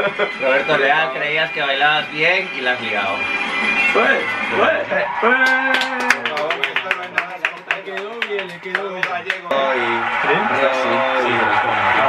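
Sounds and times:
people clapping: 0:05.2 - 0:12.0.

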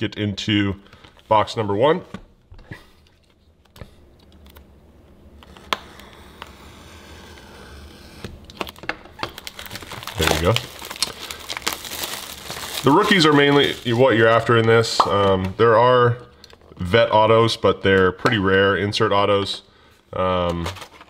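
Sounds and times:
plastic shrink-wrap crinkling: 0:08.4 - 0:15.6, 0:20.5 - 0:21.0.

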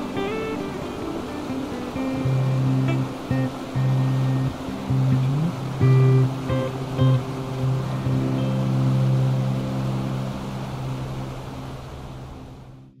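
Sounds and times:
background music with sustained notes: 0:00.0 - 0:13.0
stream rushing over rocks: 0:00.0 - 0:13.0.

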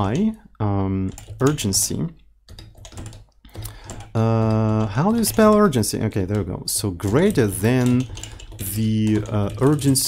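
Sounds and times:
computer keyboard typing: 0:00.0 - 0:00.4, 0:01.0 - 0:10.0.

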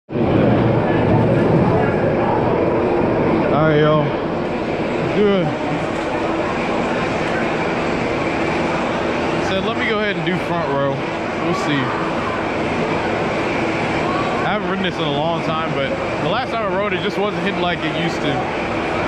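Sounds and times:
many people talking: 0:00.1 - 0:19.0.

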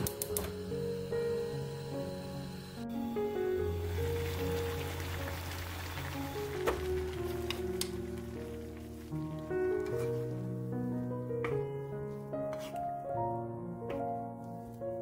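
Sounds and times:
background music sustained notes: 0:00.0 - 0:15.0
water boiling hard: 0:03.7 - 0:09.2.

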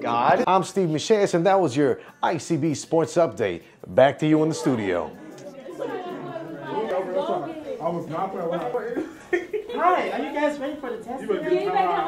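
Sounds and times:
voices chattering: 0:04.2 - 0:12.0.

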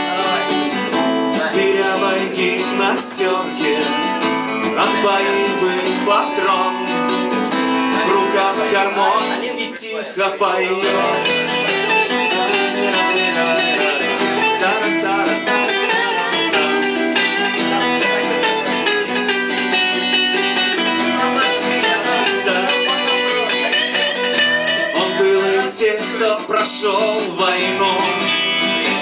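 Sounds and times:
lead guitar melody: 0:00.0 - 0:29.0
strummed acoustic guitar: 0:00.0 - 0:29.0.

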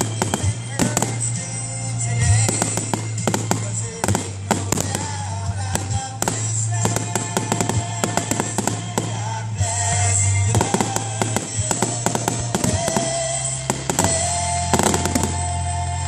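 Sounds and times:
fireworks bursting and crackling: 0:00.0 - 0:16.0
music playing: 0:00.0 - 0:16.0.

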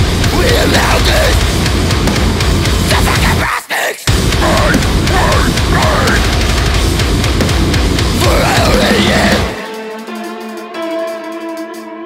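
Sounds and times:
distorted guitars: 0:00.0 - 0:11.3
drums: 0:00.0 - 0:12.0
vocal: 0:00.2 - 0:01.5, 0:02.8 - 0:06.4, 0:08.1 - 0:09.7.

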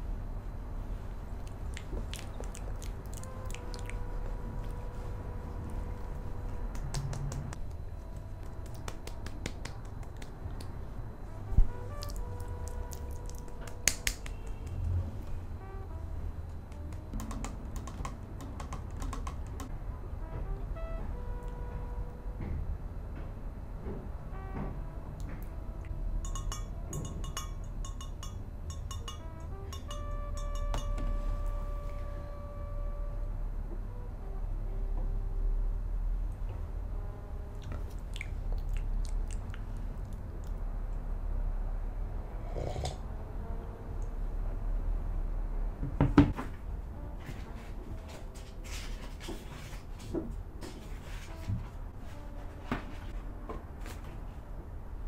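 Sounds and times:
fingernails tapping on plastic bottles: 0:16.7 - 0:19.7
glass mug clinking on table: 0:26.2 - 0:29.2.

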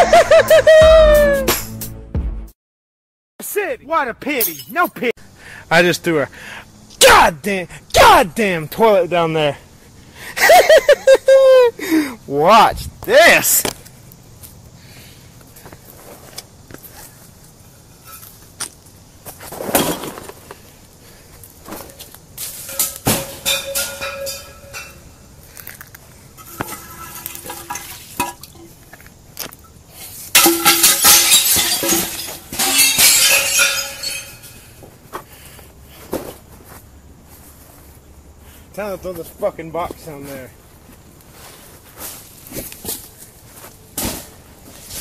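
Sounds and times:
glass bottles smashing: 0:22.4 - 0:25.2, 0:26.4 - 0:28.8, 0:30.3 - 0:34.8
glass clinking: 0:22.7 - 0:25.2, 0:26.4 - 0:28.7, 0:30.4 - 0:34.8.

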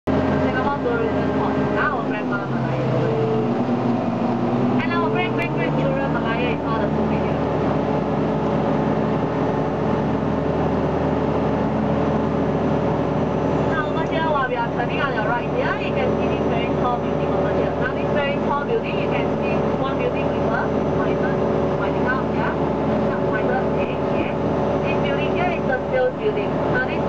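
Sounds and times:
boat engine running: 0:00.0 - 0:27.0
voices: 0:00.1 - 0:07.6, 0:13.7 - 0:27.0.

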